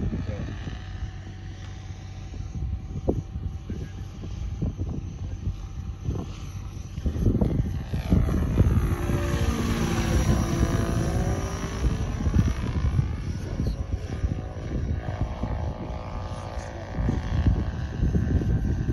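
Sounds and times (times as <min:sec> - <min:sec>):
electric motor whine: 0:00.0 - 0:18.9
helicopter rotors beating: 0:00.0 - 0:18.9
wind on microphone: 0:00.0 - 0:18.9.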